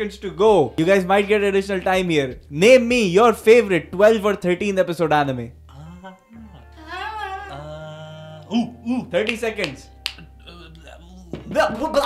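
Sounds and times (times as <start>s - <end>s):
quiet background music: 0.0s - 12.0s
finger snap: 9.2s - 10.4s.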